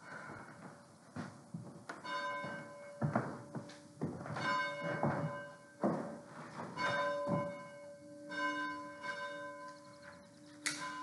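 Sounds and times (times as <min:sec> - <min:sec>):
dull thuds: 0:00.6 - 0:07.8
church bell tolling: 0:02.0 - 0:11.0.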